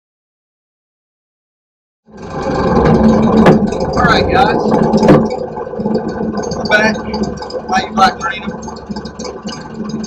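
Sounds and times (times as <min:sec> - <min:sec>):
boat motor running: 0:02.1 - 0:10.0.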